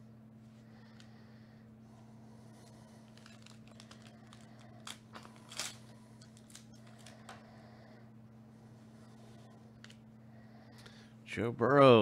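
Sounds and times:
low electrical hum: 0.0s - 12.0s
foil wrapper crinkling: 3.1s - 7.2s
foil wrapper ripping: 3.2s - 7.1s.

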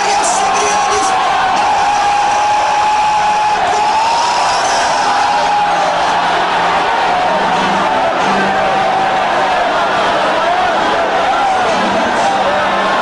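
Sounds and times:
congregation praying aloud: 0.0s - 13.0s.

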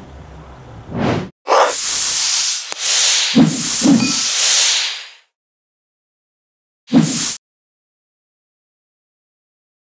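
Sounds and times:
whooshing sound effects: 0.9s - 5.2s
sharp click: 2.6s - 2.9s.

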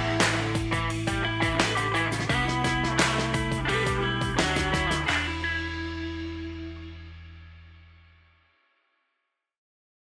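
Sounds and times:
electric guitar chord ringing: 0.0s - 7.4s
sustained low bass note: 3.7s - 8.0s.

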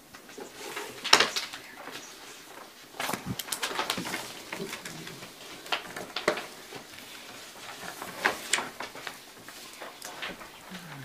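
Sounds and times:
paper rustling and shuffling: 0.0s - 11.0s.

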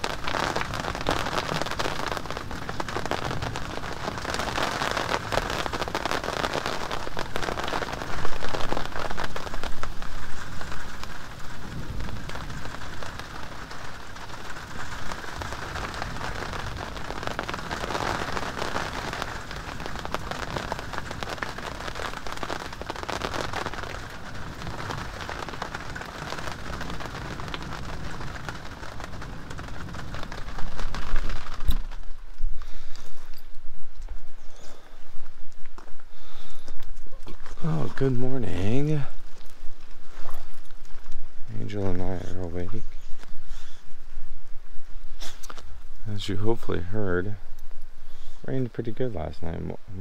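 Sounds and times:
heavy rain falling: 0.0s - 50.0s
person breathing: 32.5s - 33.5s, 34.4s - 35.2s, 36.1s - 36.9s, 43.3s - 44.0s, 48.0s - 48.5s
person talking: 37.6s - 39.2s, 41.5s - 42.9s.

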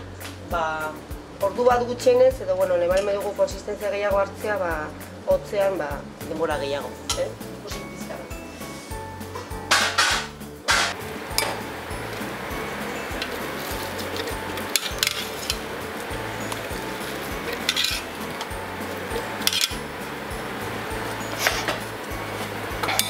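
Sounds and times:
background music: 0.0s - 23.0s.

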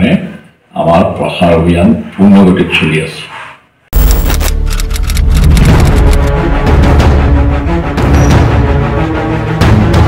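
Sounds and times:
news theme music with strong bass: 4.0s - 10.0s.

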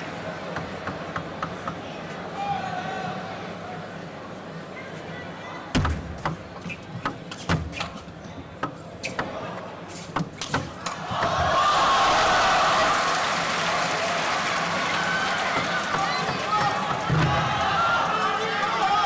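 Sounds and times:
crowd cheering: 10.6s - 19.0s.

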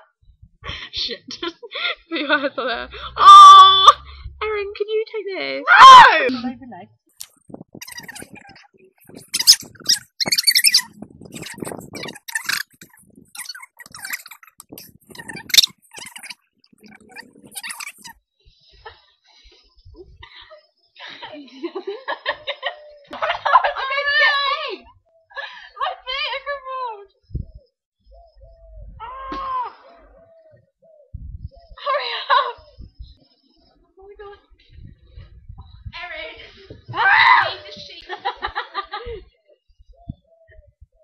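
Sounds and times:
high-pitched voice crying: 3.0s - 4.0s, 17.1s - 18.1s, 29.0s - 30.1s
loud scream: 3.0s - 4.1s, 5.6s - 6.2s, 36.9s - 37.6s.

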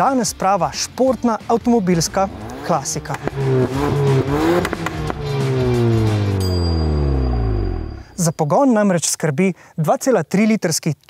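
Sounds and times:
car engine revving: 1.5s - 8.2s.

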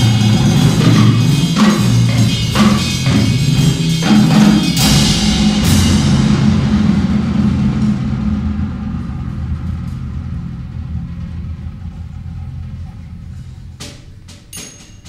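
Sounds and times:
deep drum rumble: 0.0s - 14.5s
sharp drum hit: 0.0s - 15.0s.

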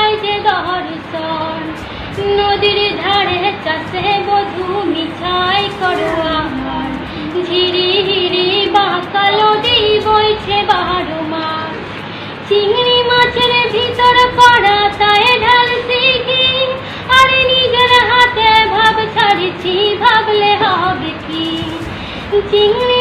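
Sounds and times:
girl singing: 0.0s - 11.9s, 12.5s - 23.0s.

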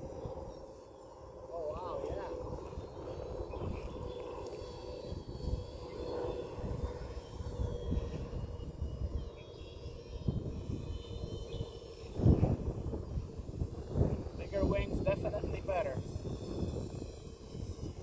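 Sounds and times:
model plane motor humming: 0.0s - 18.0s
wind on microphone: 1.5s - 18.0s.

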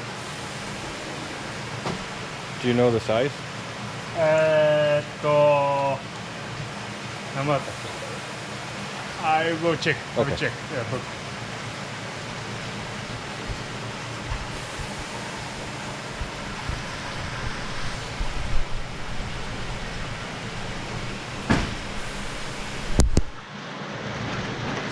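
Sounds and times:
water rushing: 0.0s - 24.9s.

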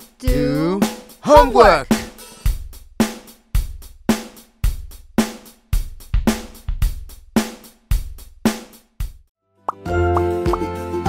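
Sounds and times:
upbeat children's music: 0.0s - 2.6s, 9.7s - 11.0s
drum hit: 0.2s - 2.9s, 5.8s - 7.1s.

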